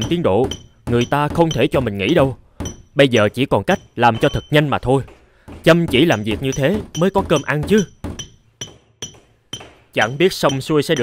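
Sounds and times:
mallet striking stone: 0.0 - 11.0.

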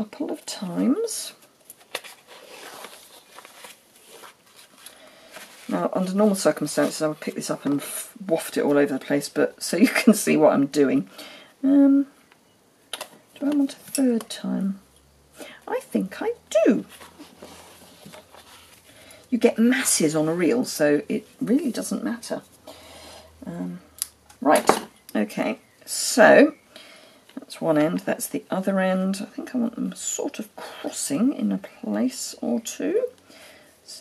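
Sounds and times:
rustling of cardstock and twine: 1.2 - 8.0, 16.8 - 20.5.

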